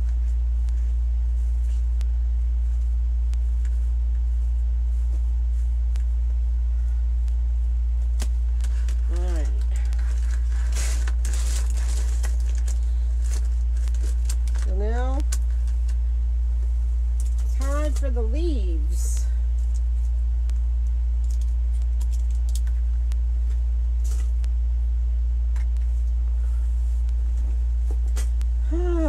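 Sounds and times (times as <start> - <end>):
steady low hum: 0.0 - 29.0
mesh rustling: 8.0 - 14.8.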